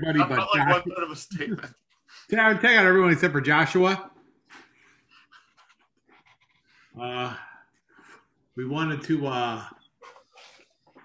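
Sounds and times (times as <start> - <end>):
soft breaths: 4.3 - 8.9.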